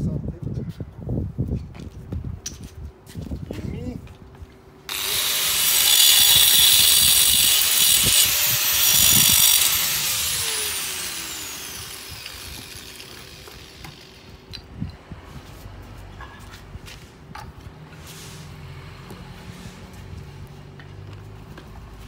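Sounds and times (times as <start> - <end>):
angle grinder cutting brick: 4.9 - 14.4.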